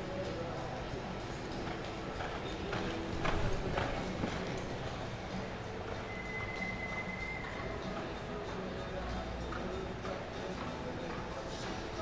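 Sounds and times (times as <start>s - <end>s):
horse hoofbeats on dirt: 1.6s - 4.7s.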